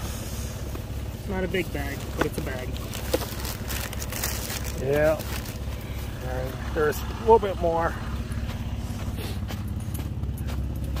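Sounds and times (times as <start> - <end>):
steady low rumble: 0.0 - 11.0
plastic bag crinkling: 2.7 - 5.8.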